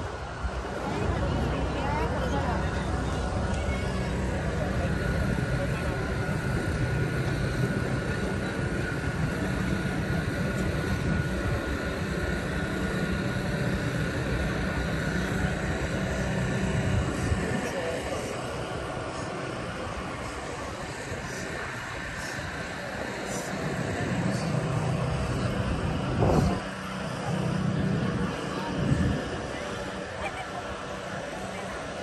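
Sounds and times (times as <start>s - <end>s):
low city rumble: 0.0s - 32.0s
voices of people nearby: 0.0s - 32.0s.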